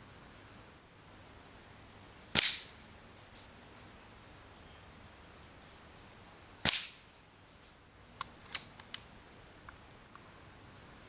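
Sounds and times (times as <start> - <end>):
air rifle shot: 2.4 - 2.8, 6.6 - 7.0.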